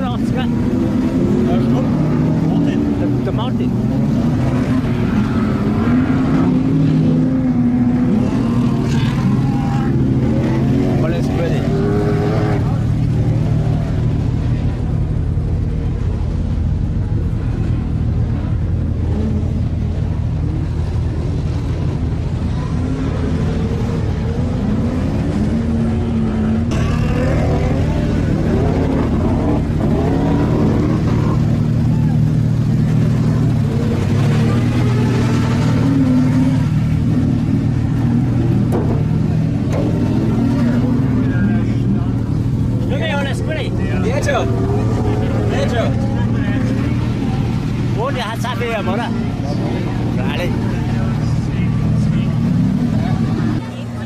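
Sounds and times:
people talking: 0.0 - 7.0, 8.1 - 18.9, 26.7 - 54.0
car engines idling: 0.0 - 54.0.

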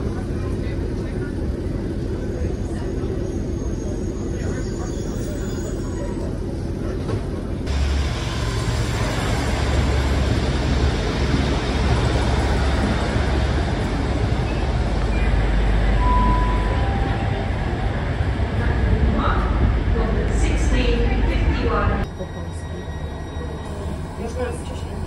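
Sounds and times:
diesel train engines humming: 0.0 - 25.0
low rumble inside train cabin: 0.0 - 25.0.

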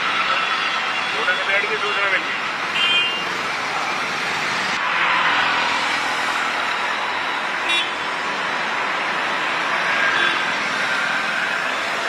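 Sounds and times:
traffic jam noise: 0.0 - 12.0.

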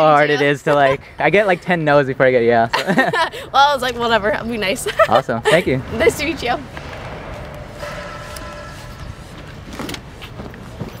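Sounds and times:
low rumble: 5.7 - 10.6
whining tone: 7.1 - 9.8.

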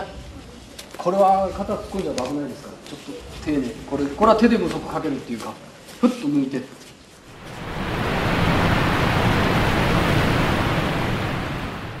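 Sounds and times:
steady wind-like rushing: 7.3 - 12.0.

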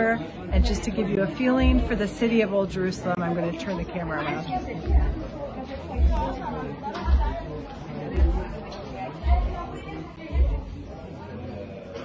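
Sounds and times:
people chattering in street: 0.0 - 12.0.

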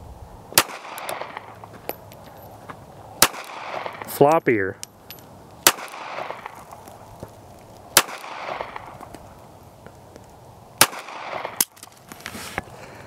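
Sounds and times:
pistol shots with echo: 0.6 - 1.6, 3.2 - 4.1, 5.6 - 6.6, 7.9 - 9.0, 10.8 - 11.7.

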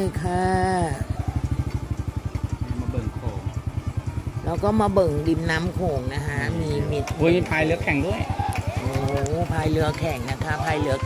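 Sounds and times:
small motorcycle engine putter: 1.1 - 4.4, 5.3 - 11.0.

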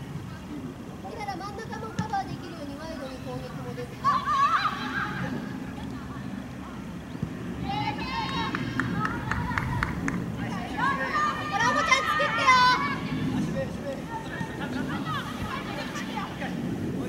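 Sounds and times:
outdoor noise: 0.0 - 17.0
players shouting calls: 7.6 - 16.4.

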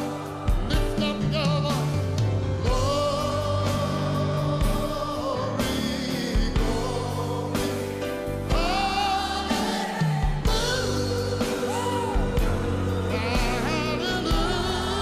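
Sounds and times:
band playing: 0.0 - 15.0
gospel singers with vibrato: 0.0 - 15.0.

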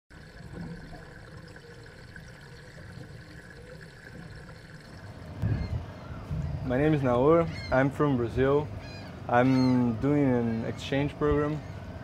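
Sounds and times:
low hum: 0.1 - 12.0
moving water: 0.1 - 12.0
low rumble: 5.2 - 7.2.

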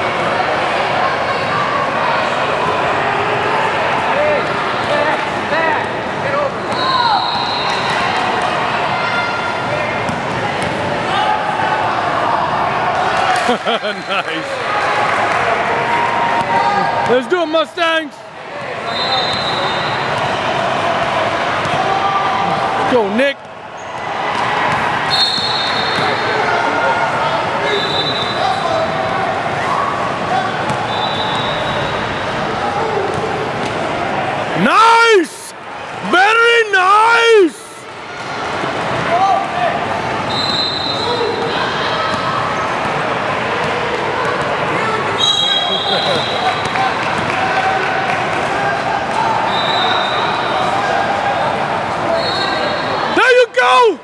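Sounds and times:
spectators chattering: 0.0 - 54.0
people shouting: 6.7 - 13.5, 32.5 - 37.8, 52.1 - 54.0.

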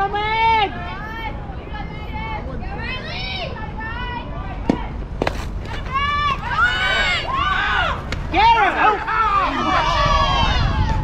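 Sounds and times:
girls yelling and cheering: 5.7 - 11.0.

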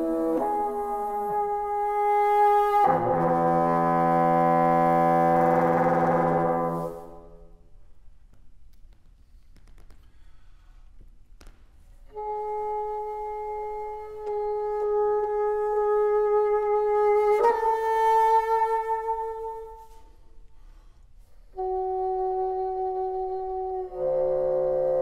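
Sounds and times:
bassoon playing long held notes: 0.0 - 7.4, 12.2 - 20.0, 21.5 - 25.0.

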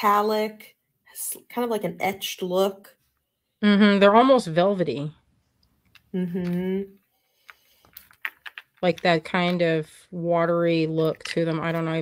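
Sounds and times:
beads clicking together: 7.4 - 9.7.

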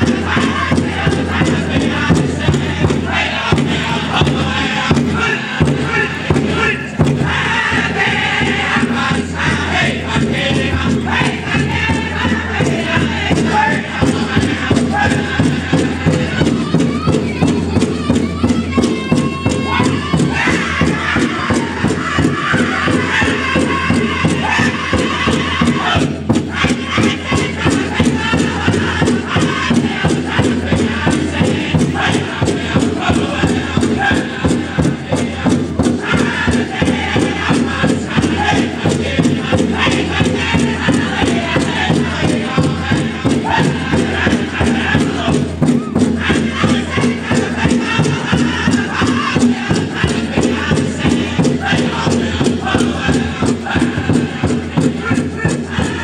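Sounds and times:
high-pitched group singing: 0.0 - 56.0
large drum steady beat: 0.0 - 56.0.

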